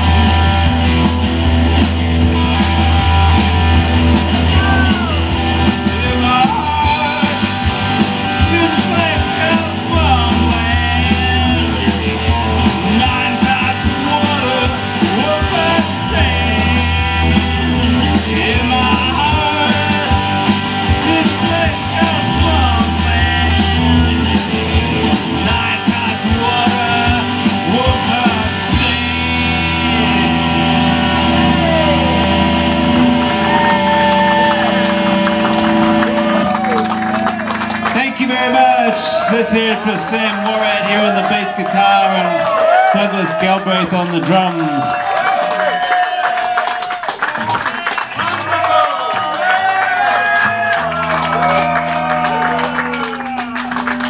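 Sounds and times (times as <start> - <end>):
live rock band playing: 0.0 - 54.0
man singing: 5.8 - 30.1.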